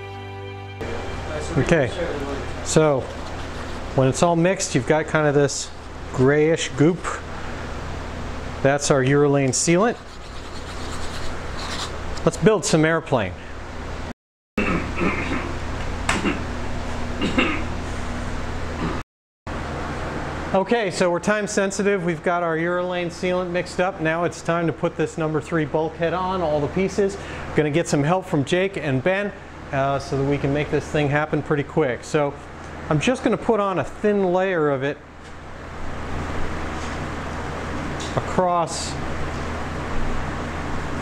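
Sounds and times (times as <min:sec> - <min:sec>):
low hum: 0:00.0 - 0:08.6
low hum of room noise: 0:00.8 - 0:41.0.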